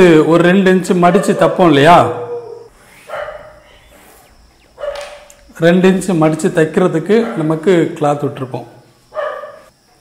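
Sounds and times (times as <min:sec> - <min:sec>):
dog barking: 0:01.1 - 0:04.0, 0:04.8 - 0:05.3, 0:07.2 - 0:07.5, 0:09.1 - 0:09.7.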